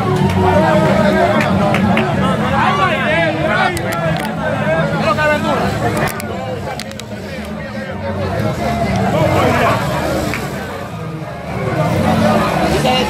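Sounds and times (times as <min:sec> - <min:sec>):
crowd voices talking and calling: 0:00.0 - 0:13.0.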